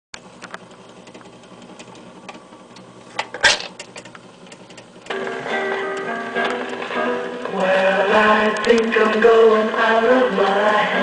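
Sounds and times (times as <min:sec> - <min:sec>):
record player mechanism clicks: 0:00.2 - 0:07.8, 0:08.5 - 0:09.2
turntable motor hum: 0:00.2 - 0:11.0.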